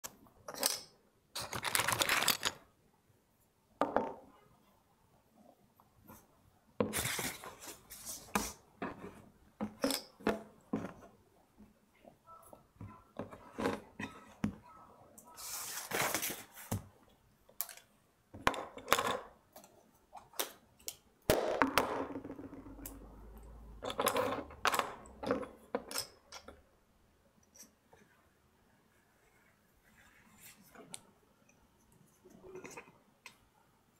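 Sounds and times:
paper rustling: 1.4s - 2.6s, 15.4s - 16.8s.

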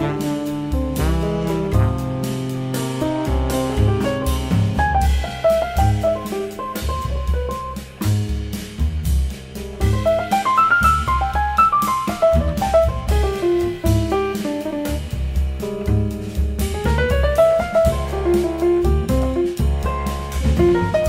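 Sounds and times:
fast melodic line: 0.0s - 8.8s, 9.5s - 21.0s
jazz bass: 0.0s - 21.0s
jazz drum kit: 0.0s - 21.0s.

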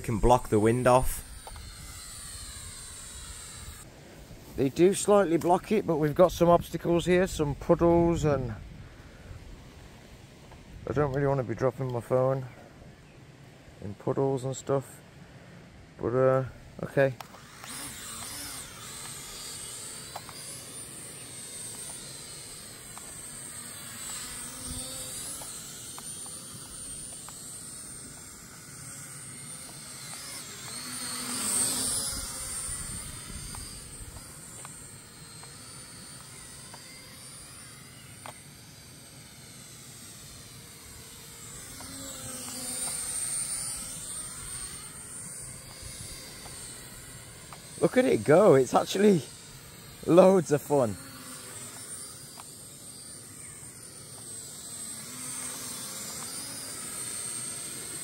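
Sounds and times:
toy drone propellers whining: 0.0s - 12.3s, 15.6s - 58.0s.

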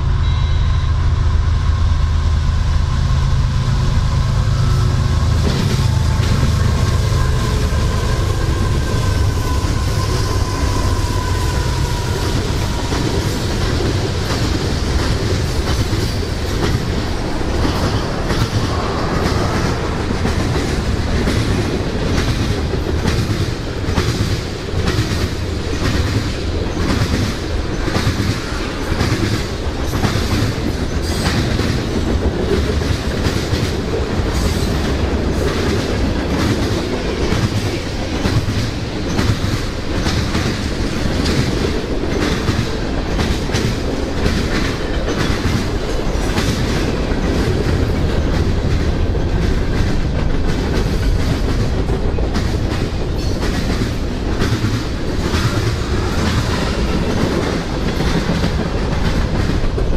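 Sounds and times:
freight train rumbling past: 0.0s - 59.9s
wheels clacking over rail joints: 4.6s - 59.9s.

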